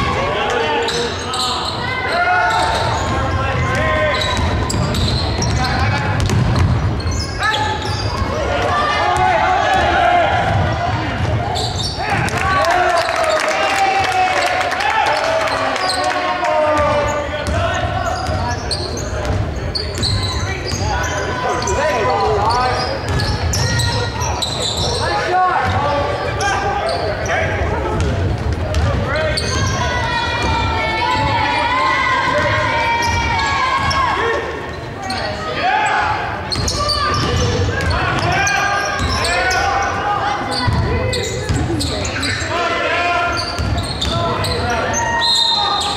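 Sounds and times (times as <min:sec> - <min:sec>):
spectators' voices overlapping: 0:00.0 - 0:45.9
basketball bouncing on hardwood: 0:06.1 - 0:06.9.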